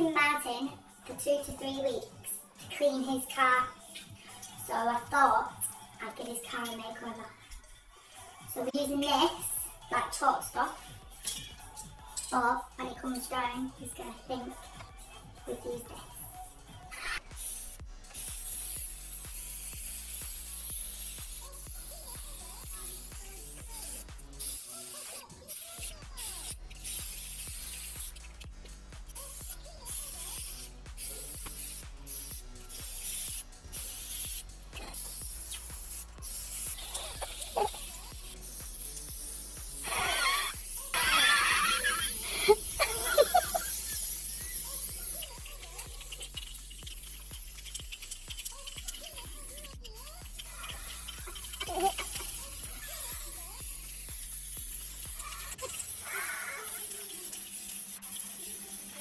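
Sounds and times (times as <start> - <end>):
background music: 0.0 - 55.9
spray paint can hissing: 14.4 - 59.0
people laughing and squealing: 39.8 - 46.2, 49.0 - 53.6, 55.2 - 57.0.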